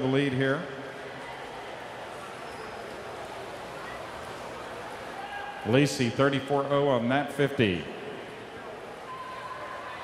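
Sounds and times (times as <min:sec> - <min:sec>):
murmur of spectators' voices: 0:00.0 - 0:10.0.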